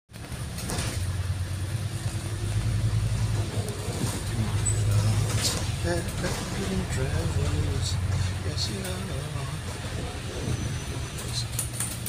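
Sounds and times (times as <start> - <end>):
bus engine droning: 0.1 - 12.0.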